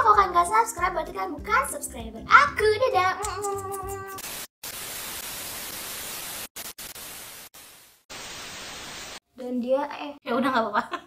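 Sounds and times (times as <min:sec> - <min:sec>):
static hiss: 0:04.2 - 0:09.2.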